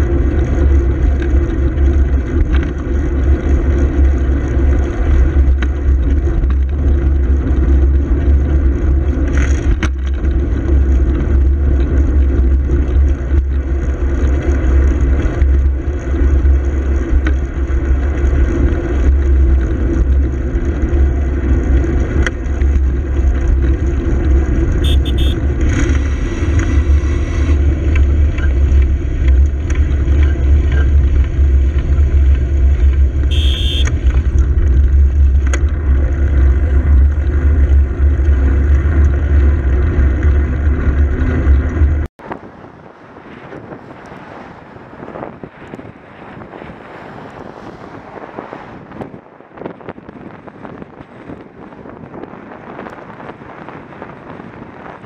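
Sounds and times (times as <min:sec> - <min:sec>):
road and traffic noise: 0:00.0 - 0:55.0
wind rumble on microphone: 0:00.0 - 0:55.0
short high-pitched sounds: 0:24.9 - 0:25.4.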